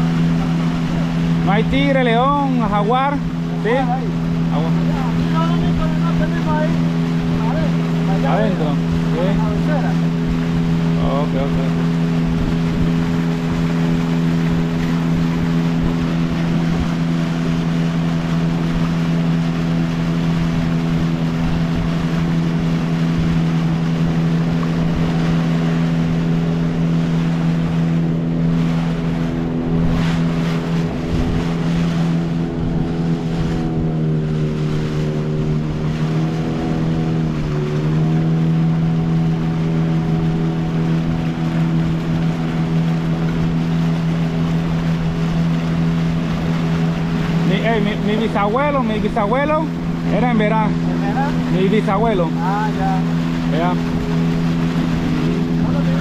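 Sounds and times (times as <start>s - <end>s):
outboard motor drone: 0.0s - 56.0s
water rushing: 0.0s - 56.0s
wind: 0.0s - 56.0s.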